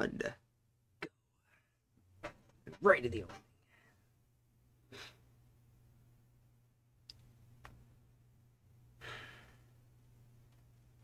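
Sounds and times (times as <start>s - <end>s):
person sighing: 9.0s - 9.7s.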